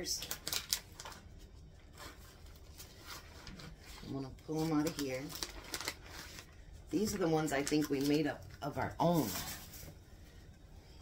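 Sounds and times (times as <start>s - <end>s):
plastic packaging rustling: 0.0s - 10.0s.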